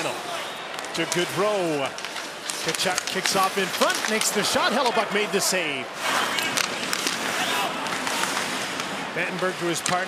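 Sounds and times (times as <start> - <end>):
crowd hum: 0.0 - 10.0
skates on ice: 0.1 - 10.0
stick and puck clacks: 0.7 - 5.3, 6.2 - 10.0.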